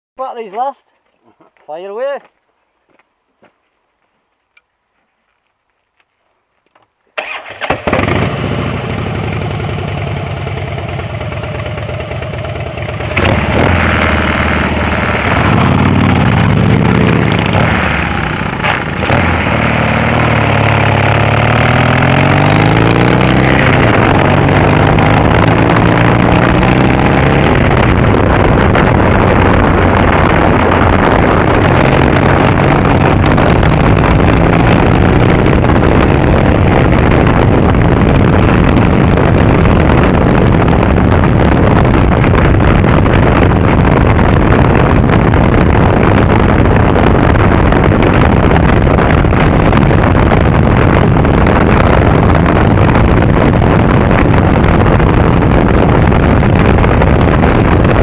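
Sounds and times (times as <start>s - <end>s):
motorcycle engine revving: 7.2s - 58.0s.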